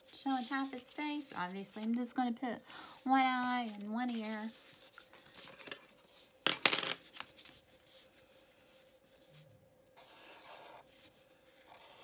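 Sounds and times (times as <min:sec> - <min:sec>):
marker and paper rattle: 0:00.0 - 0:02.4, 0:03.0 - 0:09.4.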